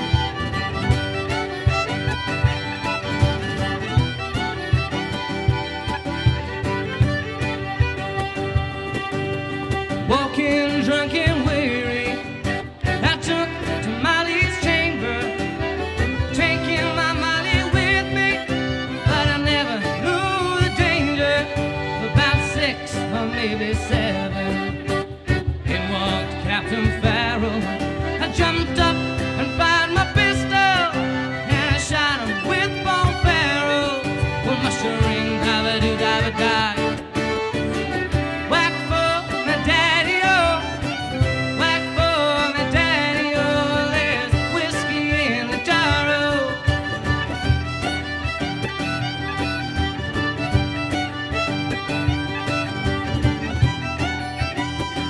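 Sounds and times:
button accordion: 0.0 - 55.0
cajon beat: 0.0 - 55.0
fiddle melody: 0.0 - 55.0
strummed acoustic guitar: 0.0 - 55.0.

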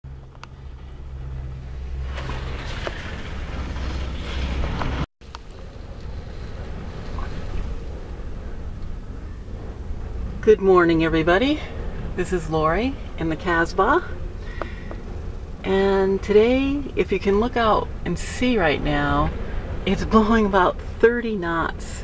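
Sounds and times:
strong wind buffeting a trailer: 0.1 - 22.0.

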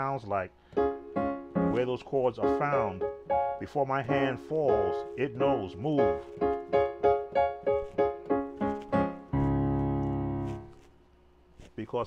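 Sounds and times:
piano chords and notes: 0.0 - 10.9.

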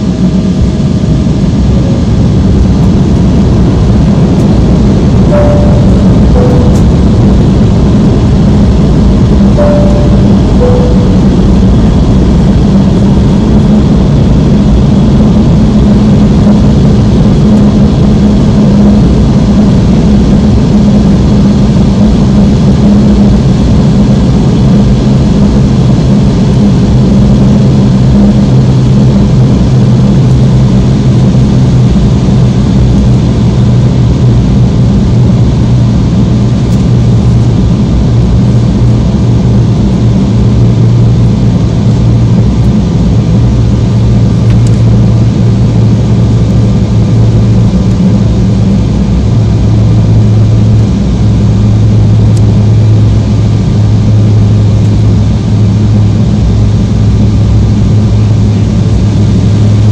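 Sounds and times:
turbofan engine hum: 0.0 - 59.9
two-note falling cabin chime: 5.3 - 7.8, 9.6 - 12.1.

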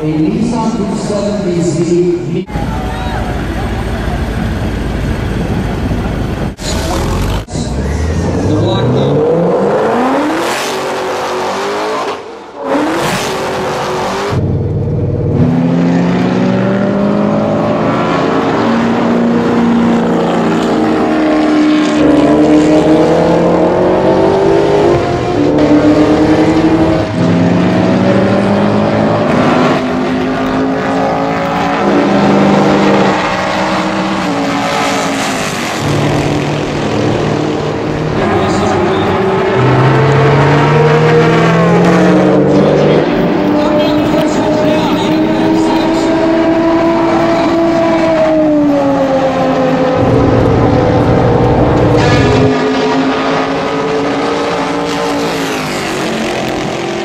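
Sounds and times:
car engine accelerating hard: 2.5 - 57.0.

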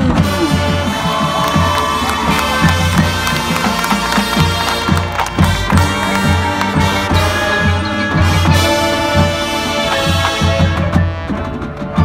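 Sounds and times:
steady drum beat: 0.0 - 12.0
crowd cheering: 0.1 - 10.9
brass holding notes: 0.1 - 12.0.

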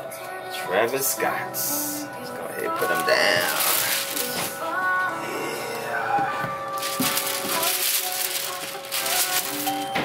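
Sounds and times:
background music with held notes: 0.0 - 10.0
foil paper rustling and crinkling: 2.7 - 5.0, 6.7 - 10.0.

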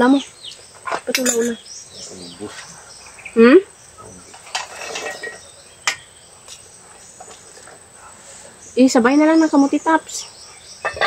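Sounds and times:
high insect chirr: 0.0 - 11.0.

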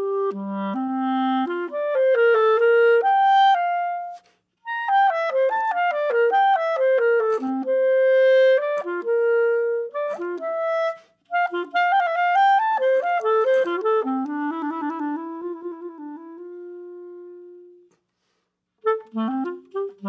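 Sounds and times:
clarinet playing fast runs: 0.0 - 17.9, 18.8 - 20.0.

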